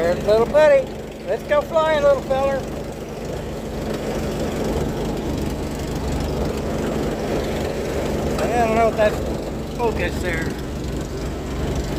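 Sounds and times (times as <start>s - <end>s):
light aircraft engine running: 0.0s - 11.9s.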